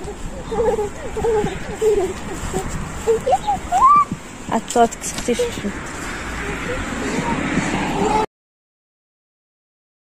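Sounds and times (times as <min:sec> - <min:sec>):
engine rumble: 0:00.0 - 0:08.3
faint voices: 0:00.0 - 0:08.3.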